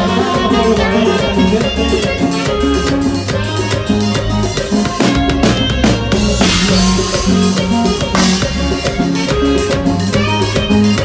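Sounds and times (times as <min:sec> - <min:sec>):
bass line: 0:00.0 - 0:11.0
quick drum strokes: 0:04.4 - 0:10.4.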